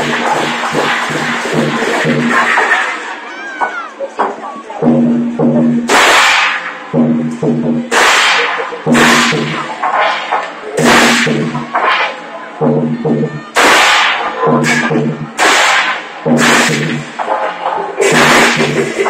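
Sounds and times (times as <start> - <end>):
hand cymbals crashing: 0.0 - 3.1, 5.4 - 12.2, 13.6 - 17.4, 18.0 - 19.0.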